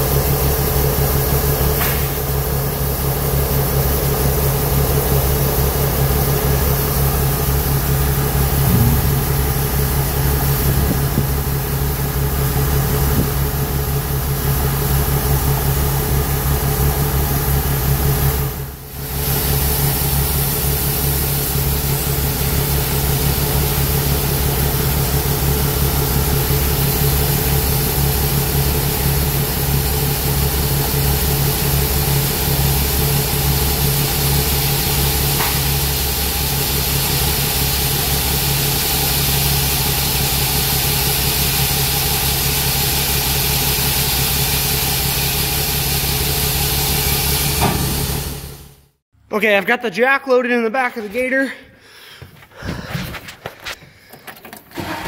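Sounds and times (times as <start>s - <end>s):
combine engine and auger drone: 1.8s - 18.4s
grain pouring hiss: 19.0s - 25.4s, 32.1s - 48.4s.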